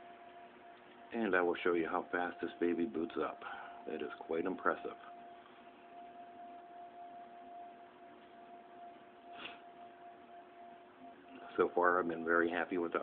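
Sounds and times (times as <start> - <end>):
thin steady high whine: 0.0 - 13.0.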